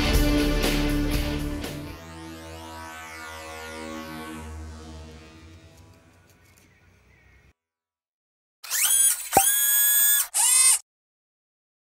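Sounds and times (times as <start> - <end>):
outro music: 0.0 - 6.4
electronic logo tones: 2.0 - 6.0.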